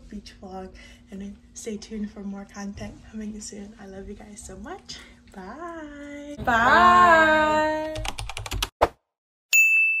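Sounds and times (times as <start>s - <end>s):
notification bell ding: 9.6s - 10.0s.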